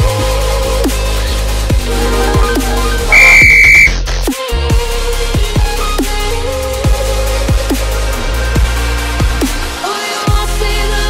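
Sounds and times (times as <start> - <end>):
electronic dance music: 2.0 - 3.9
loud steady beep: 3.1 - 4.0.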